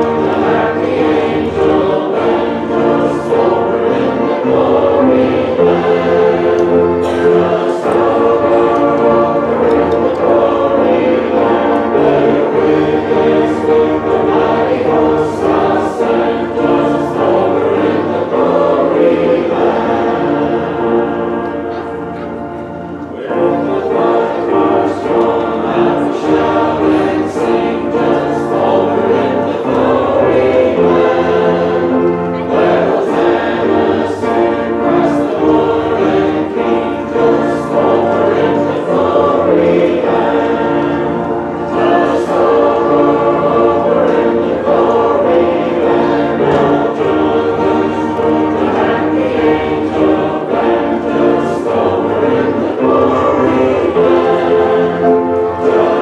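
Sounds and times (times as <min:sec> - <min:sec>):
choir singing a hymn: 0:00.0 - 0:56.0
musical accompaniment: 0:00.0 - 0:56.0.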